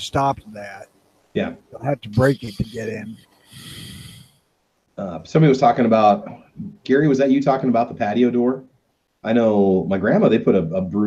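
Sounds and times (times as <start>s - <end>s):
person speaking: 0.0s - 0.8s, 1.4s - 4.2s
person breathing close to microphone: 2.4s - 4.4s.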